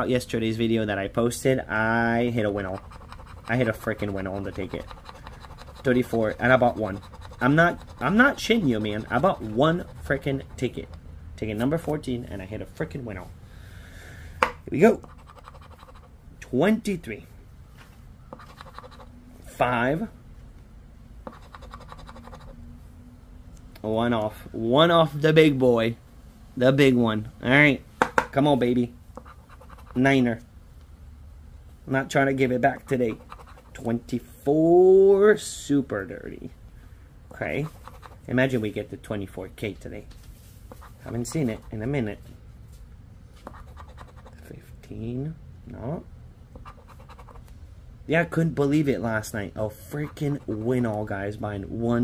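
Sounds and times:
scratch-off ticket scraping: 0:02.4 - 0:12.0, 0:15.0 - 0:16.1, 0:18.4 - 0:19.1, 0:21.3 - 0:22.6, 0:29.2 - 0:30.0, 0:32.9 - 0:33.9, 0:37.6 - 0:38.2, 0:40.7 - 0:41.8, 0:43.5 - 0:44.4, 0:46.6 - 0:47.5.

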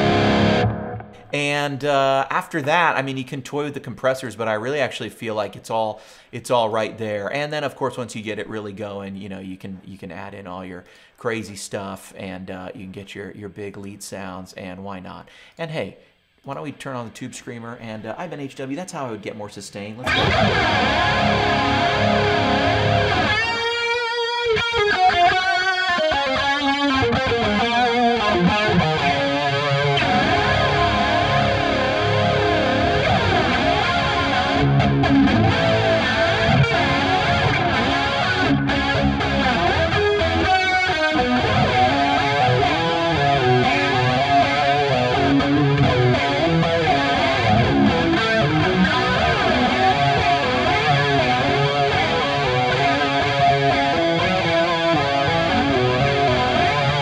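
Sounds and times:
distorted electric guitar solo: 0:00.0 - 0:01.4, 0:20.0 - 0:57.0.

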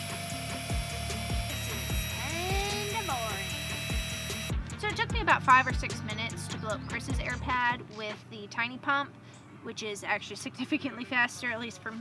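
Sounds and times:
electric air pump whining: 0:00.0 - 0:04.7
background music with steady beat: 0:00.0 - 0:12.0.

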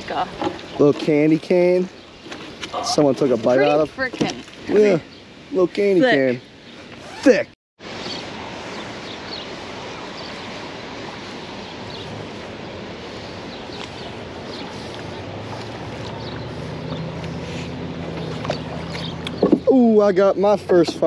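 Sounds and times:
moving water: 0:00.0 - 0:21.0
wind: 0:00.0 - 0:21.0
low motor hum: 0:10.8 - 0:19.7.

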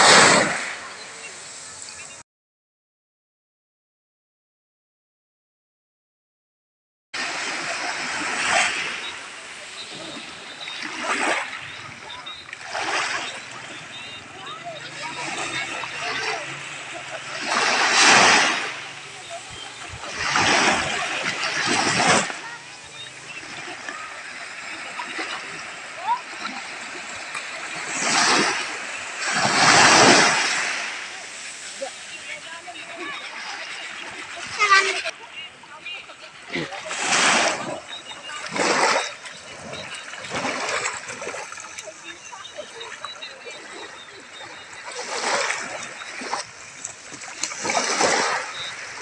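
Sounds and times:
small waves breaking on sand: 0:00.0 - 0:02.2, 0:07.2 - 0:49.0.

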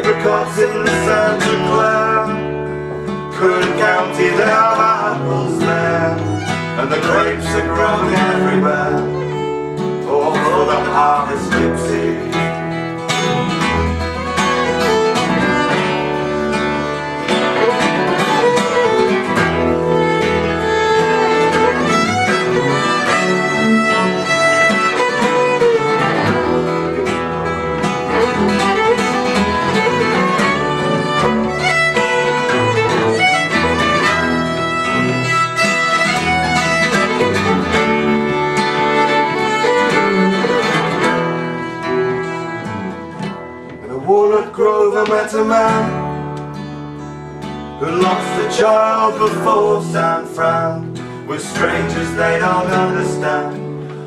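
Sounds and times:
acoustic guitar: 0:00.0 - 0:54.0
double bass: 0:00.0 - 0:54.0
fiddle melody: 0:00.0 - 0:54.0.

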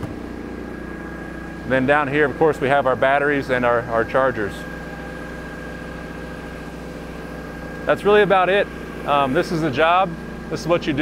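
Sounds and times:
generator engine humming: 0:00.0 - 0:11.0
faint high whine: 0:00.2 - 0:11.0.

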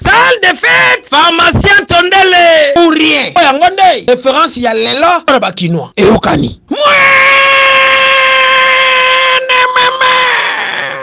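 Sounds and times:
man's long high-pitched shout: 0:06.7 - 0:11.0.

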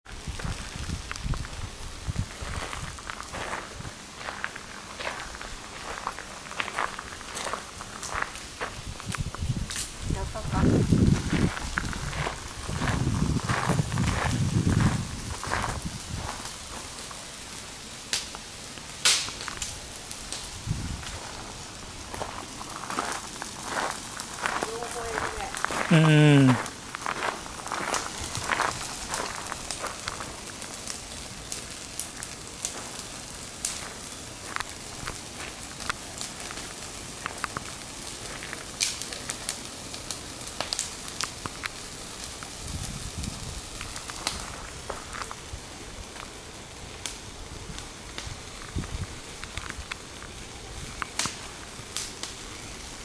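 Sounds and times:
footsteps crunching outdoors: 0:00.0 - 0:17.7, 0:18.3 - 0:46.9
faint voices: 0:24.5 - 0:26.7.

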